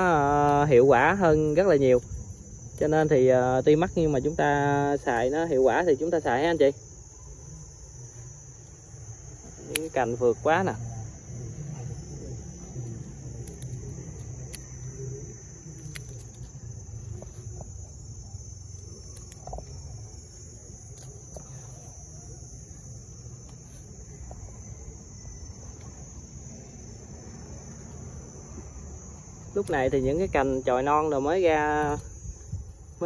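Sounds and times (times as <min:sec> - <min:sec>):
insects chorus: 0:00.0 - 0:33.0.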